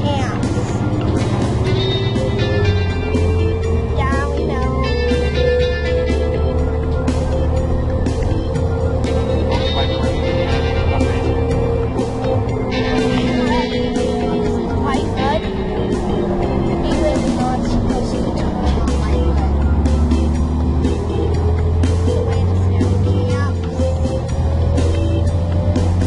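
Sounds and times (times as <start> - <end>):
background music: 0.0 - 26.0
bus engine drone: 0.0 - 26.0
engine whine sliding in pitch: 0.0 - 26.0.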